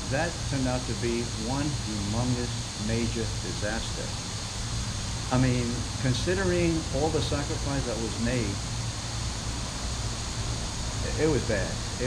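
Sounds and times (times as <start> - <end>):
low even hum: 0.0 - 12.0.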